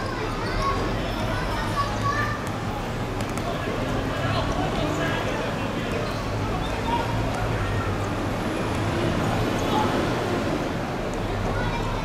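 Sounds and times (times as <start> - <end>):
faint distant voices: 0.0 - 12.0
low traffic rumble: 0.0 - 12.0.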